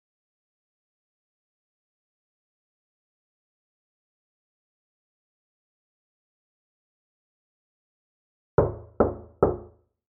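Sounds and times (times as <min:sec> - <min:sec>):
knocking on a door: 0:08.6 - 0:09.8.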